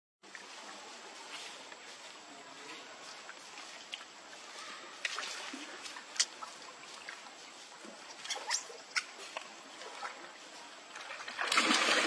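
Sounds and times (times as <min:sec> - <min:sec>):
water splashing: 0:03.0 - 0:12.0.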